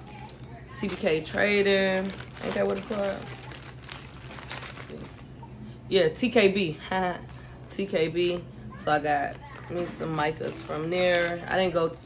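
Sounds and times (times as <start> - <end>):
packaging crinkling and rustling: 0.0 - 5.3, 9.1 - 12.0.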